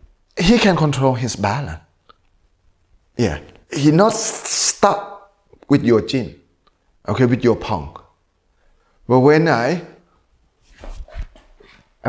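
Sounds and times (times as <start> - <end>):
feet scuffing on hard floor: 10.6 - 11.8.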